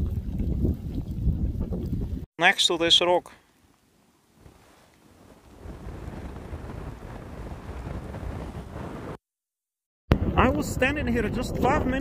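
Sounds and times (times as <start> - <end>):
wind buffeting microphone: 0.0 - 2.3, 4.4 - 9.2, 10.1 - 12.0.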